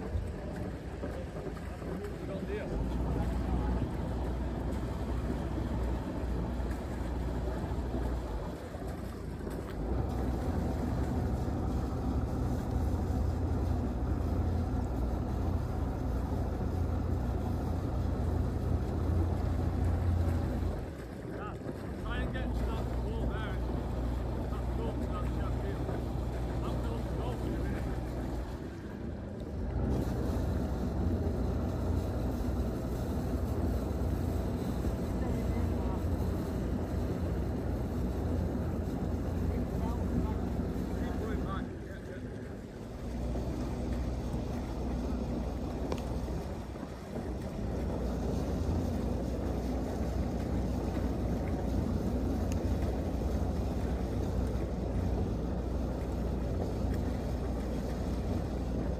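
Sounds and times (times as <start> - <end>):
boat engine humming: 0.0 - 58.9.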